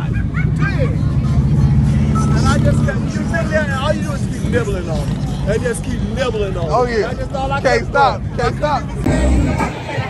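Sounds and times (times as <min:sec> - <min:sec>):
motorcycle engine rumbling: 0:00.2 - 0:07.5
men talking: 0:02.2 - 0:10.0.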